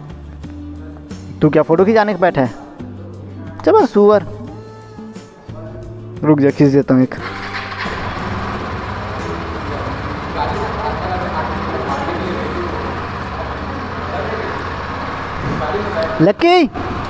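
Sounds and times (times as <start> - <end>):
motorcycle engine idling: 7.2 - 17.0
faint voices: 8.8 - 16.2.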